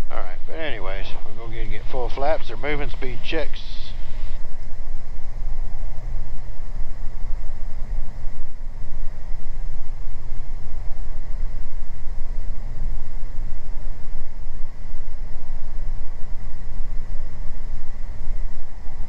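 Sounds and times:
propeller aircraft engines droning: 0.0s - 19.0s.

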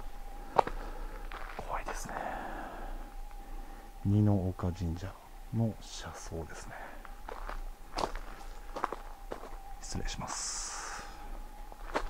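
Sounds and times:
footsteps on gravel: 0.6s - 2.0s, 7.0s - 9.6s, 11.8s - 12.0s.

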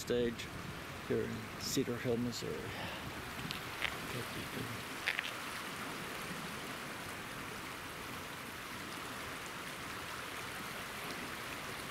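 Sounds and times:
river rushing: 0.0s - 11.9s.

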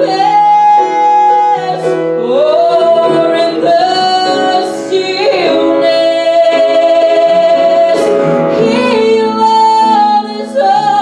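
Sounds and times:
piano accompaniment: 0.0s - 11.0s
woman singing: 0.0s - 11.0s.

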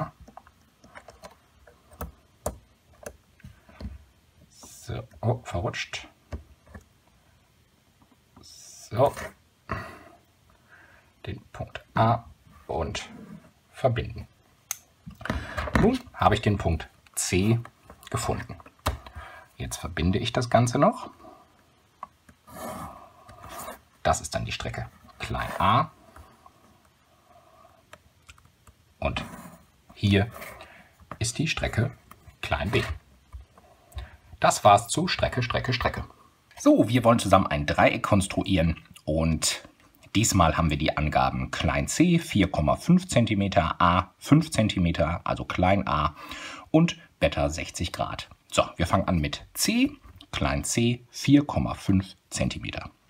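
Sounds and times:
pencil scratching on paper: 29.2s - 29.7s.

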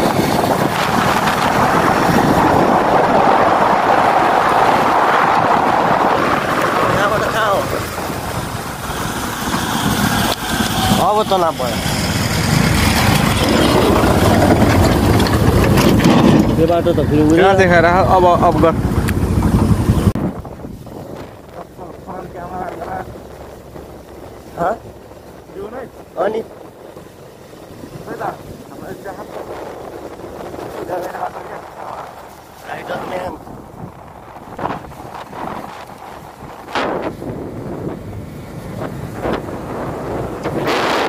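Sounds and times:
road noise: 0.0s - 41.0s
wind rush on microphone: 0.0s - 41.0s
motorcycle engine running: 5.8s - 32.8s.

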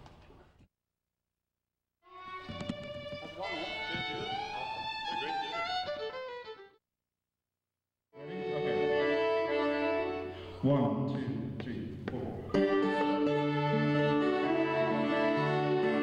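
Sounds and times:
bowed fiddle with sliding notes: 2.1s - 6.7s, 8.2s - 10.4s, 12.6s - 16.0s
music with long held notes: 8.2s - 10.4s, 12.5s - 16.0s.

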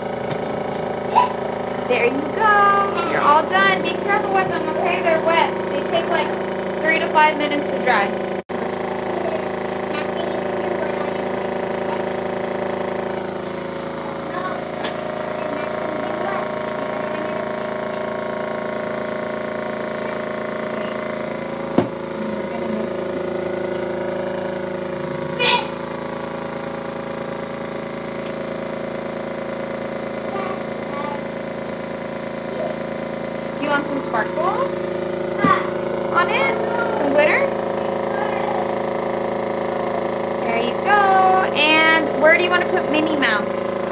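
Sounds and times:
airbrush compressor humming: 0.0s - 43.9s.

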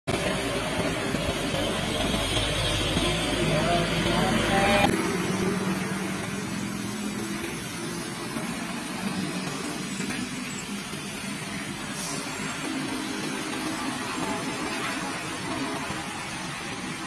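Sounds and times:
trucks and cars driving uphill: 0.1s - 17.0s.

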